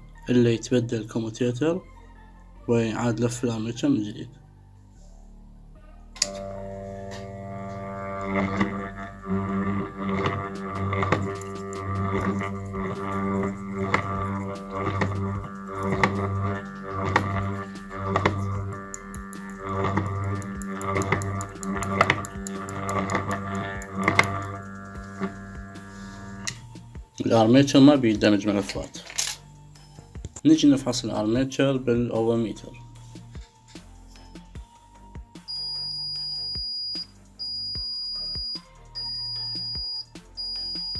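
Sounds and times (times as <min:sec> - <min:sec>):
armature growler hum: 0:06.2 - 0:26.9.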